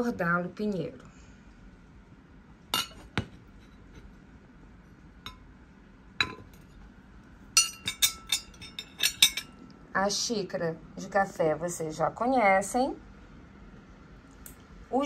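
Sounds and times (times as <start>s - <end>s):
ceramic plates and teaspoon clinking: 7.6s - 9.6s.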